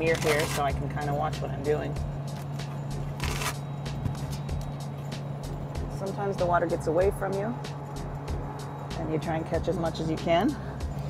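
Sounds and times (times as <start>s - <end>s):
low cabin hum: 0.0s - 11.0s.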